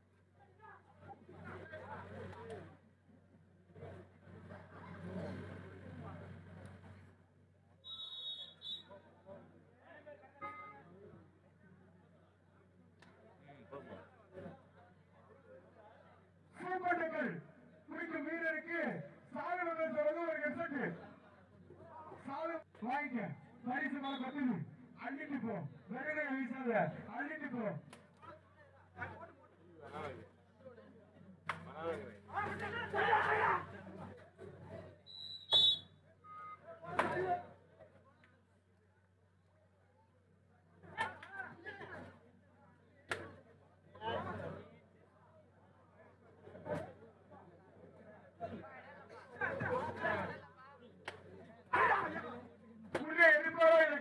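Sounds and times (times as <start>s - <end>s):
referee's whistle blasts: 7.8s - 9.0s, 24.0s - 24.4s, 35.0s - 36.6s
voices shouting: 32.3s - 33.8s, 51.7s - 52.2s.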